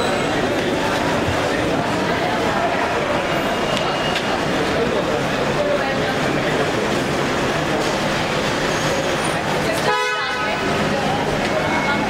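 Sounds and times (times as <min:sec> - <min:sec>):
echoing parking garage din: 0:00.0 - 0:12.0.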